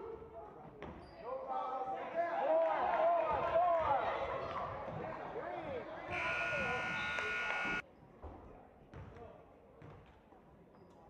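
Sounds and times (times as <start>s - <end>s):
scoreboard buzzer blaring: 6.1s - 7.8s.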